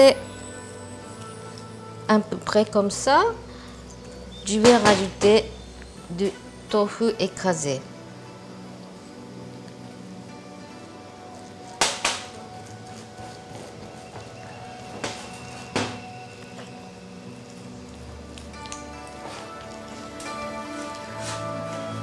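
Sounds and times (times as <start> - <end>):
soft background music: 0.0 - 22.0.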